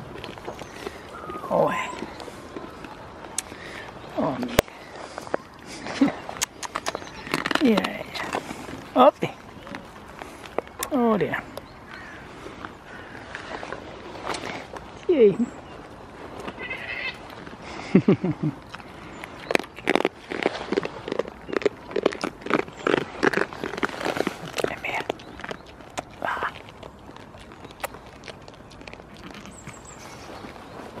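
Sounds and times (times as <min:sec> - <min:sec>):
goats chewing with crunching clicks: 0:00.0 - 0:31.0
goat bleating: 0:16.5 - 0:17.3.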